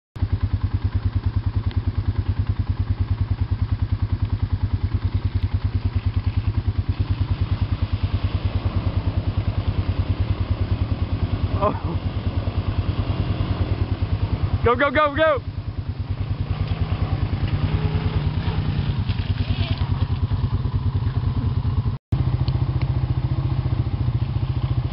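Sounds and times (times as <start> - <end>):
engine running at low revs: 0.2 - 24.9.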